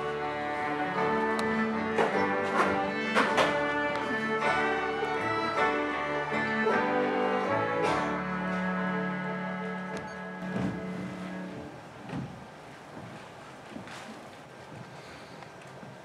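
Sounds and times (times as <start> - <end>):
acoustic band playing: 0.0 - 11.8
banjo plucked attacks: 1.8 - 8.7.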